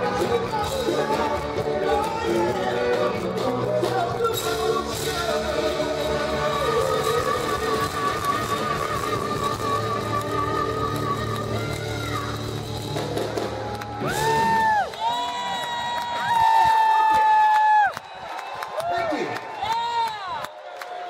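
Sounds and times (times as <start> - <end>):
rock band playing: 0.0 - 14.9
crowd cheering: 7.1 - 21.0.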